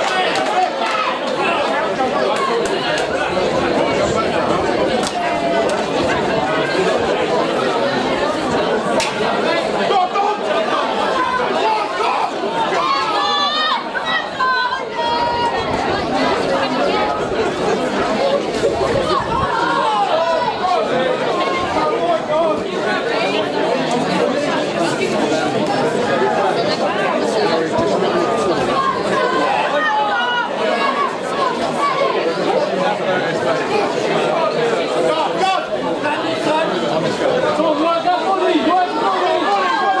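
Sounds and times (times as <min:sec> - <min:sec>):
crowd chattering: 0:00.0 - 0:40.0.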